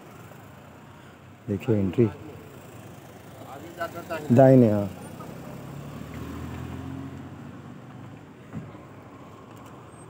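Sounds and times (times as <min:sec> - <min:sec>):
car engine passing slowly: 0:00.0 - 0:10.0.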